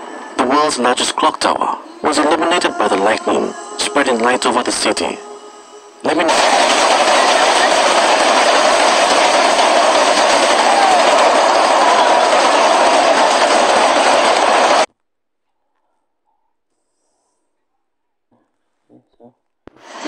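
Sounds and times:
heavy rain pouring: 6.3 - 14.9.

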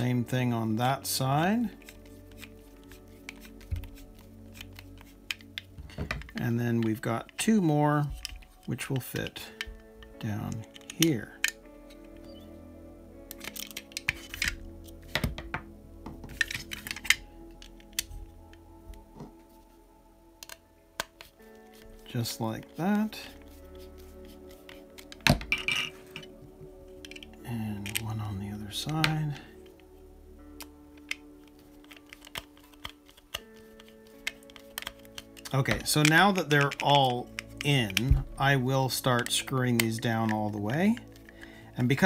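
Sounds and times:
background music: 0.0 - 42.0
plastic parts handled: 1.0 - 12.5, 13.2 - 19.6, 20.4 - 42.0
screwdriver clicking and scraping: 1.8 - 7.4, 8.0 - 12.5, 13.3 - 15.2, 16.2 - 18.2, 23.3 - 28.1, 30.6 - 38.2
screwdriver clicking: 31.8 - 35.5.

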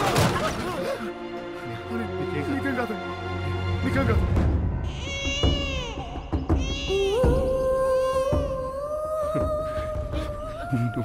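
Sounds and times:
background film music: 0.0 - 11.0
newborn baby crying: 4.9 - 7.2.

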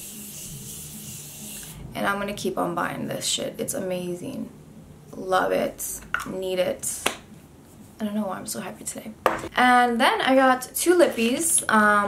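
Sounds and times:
mist spray hissing: 0.0 - 1.9.

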